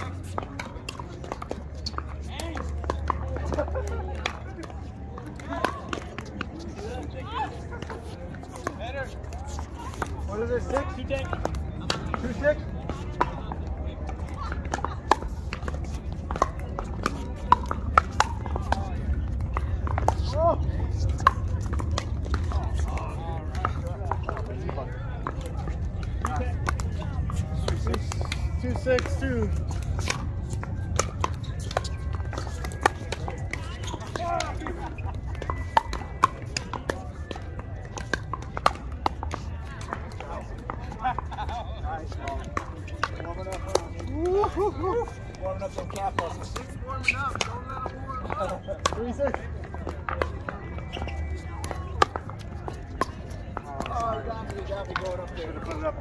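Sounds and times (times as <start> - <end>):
faint voices: 0.0 - 56.0
shoes on court surface: 0.0 - 56.0.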